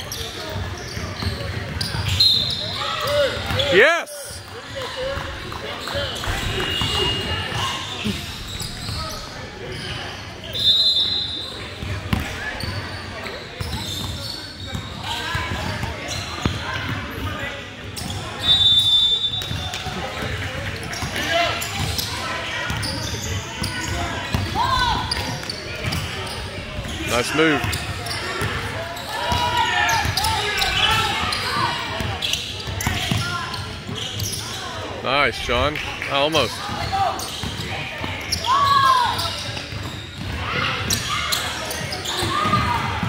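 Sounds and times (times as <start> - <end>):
voices in gym: 0.0 - 43.0
referee whistle blasts: 2.1 - 2.7, 10.5 - 11.5, 18.4 - 19.7.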